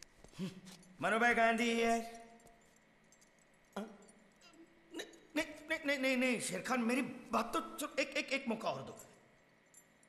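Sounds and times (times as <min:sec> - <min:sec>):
man's voice: 0:01.0 - 0:02.2, 0:05.0 - 0:09.0.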